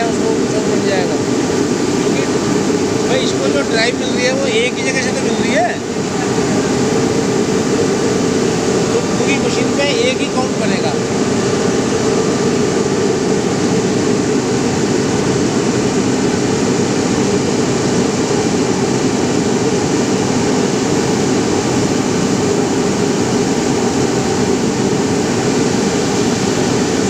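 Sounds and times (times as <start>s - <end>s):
textile machinery droning: 0.0s - 27.0s.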